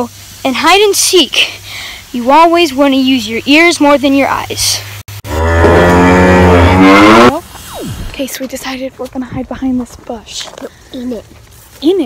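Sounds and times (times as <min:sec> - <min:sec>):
low buzzing horn sound effect: 0:05.2 - 0:08.2
falling whoosh: 0:06.9 - 0:08.3.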